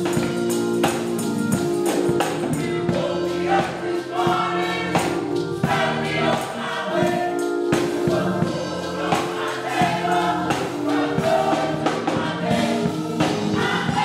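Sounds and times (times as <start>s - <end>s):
gospel group singing in harmony: 0.0s - 14.0s
held accompanying notes: 0.0s - 14.0s
percussion beat: 0.0s - 14.0s.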